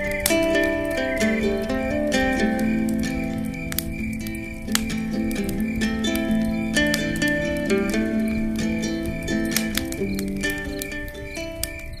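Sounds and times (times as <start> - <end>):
plucked acoustic guitar music: 0.0 - 12.0.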